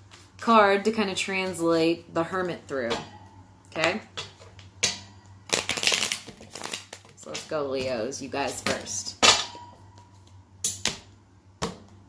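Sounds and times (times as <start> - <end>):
cards being shuffled: 5.5 - 7.4.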